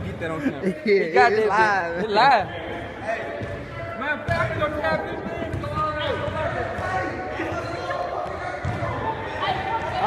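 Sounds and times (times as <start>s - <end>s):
players' voices: 0.0s - 10.0s
basketball bouncing: 4.3s - 7.0s, 8.2s - 8.9s.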